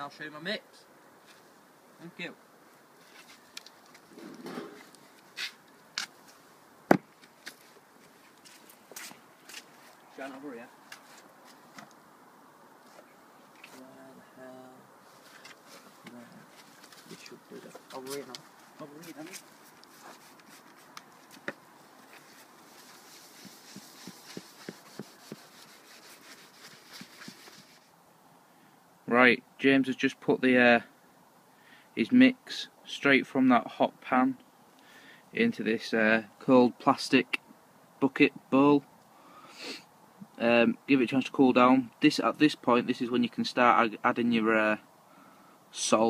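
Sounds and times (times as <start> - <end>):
soft hiss: 0.0 - 46.0
fire crackling: 1.1 - 28.1.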